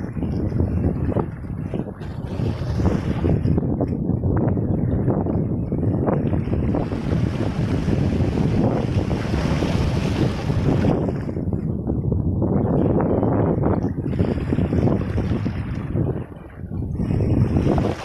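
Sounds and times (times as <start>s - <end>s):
wind buffeting microphone: 0.0s - 18.0s
waves washing over rocks: 6.5s - 11.5s, 16.9s - 18.0s.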